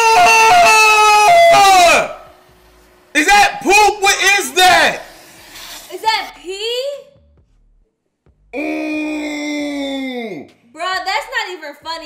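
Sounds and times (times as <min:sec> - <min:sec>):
person's cry of disgust: 0:08.6 - 0:10.4.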